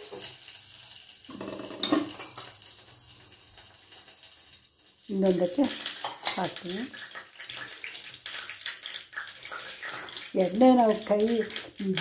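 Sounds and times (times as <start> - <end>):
steady hiss with small clicks: 0.0 - 12.0
woman speaking: 5.1 - 5.8, 6.4 - 6.9, 10.4 - 12.0.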